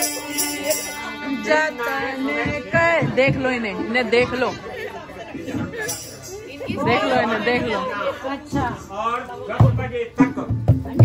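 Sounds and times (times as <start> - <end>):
women chattering: 0.0 - 9.6
women laughing: 4.1 - 6.0.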